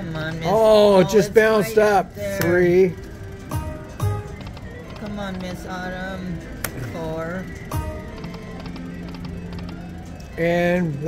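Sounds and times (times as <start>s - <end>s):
slot machine reels ticking: 0.0s - 11.0s.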